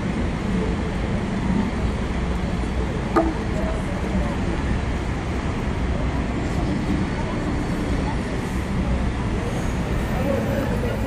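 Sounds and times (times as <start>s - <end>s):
faint voices of passers-by: 0.0s - 11.0s
traffic rumble: 0.0s - 11.0s.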